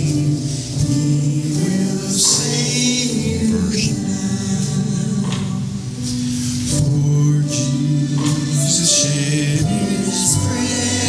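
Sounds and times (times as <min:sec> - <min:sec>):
hymn music held chords: 0:00.0 - 0:11.0.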